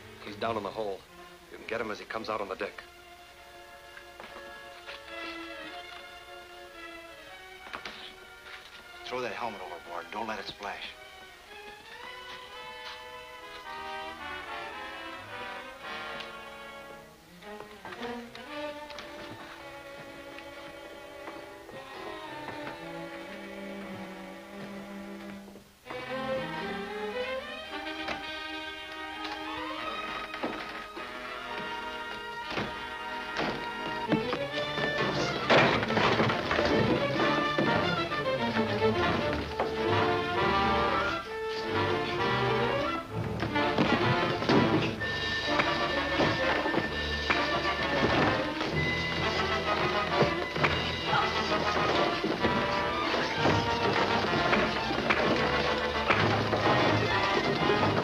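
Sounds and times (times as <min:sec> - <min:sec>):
dramatic orchestral music: 0:00.0 - 0:58.0.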